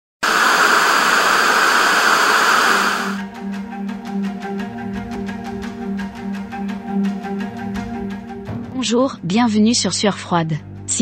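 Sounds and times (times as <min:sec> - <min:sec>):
television static hiss: 0:00.2 - 0:03.2
music with low notes and clicks: 0:03.3 - 0:08.9.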